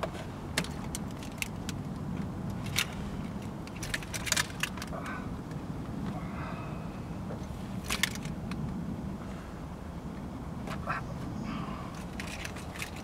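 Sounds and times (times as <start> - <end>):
low rumble inside car: 0.0 - 13.0.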